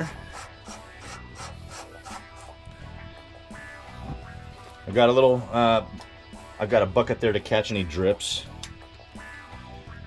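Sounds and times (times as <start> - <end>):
hose coupling scraping on threads: 0.0 - 2.6
background music: 0.0 - 10.0.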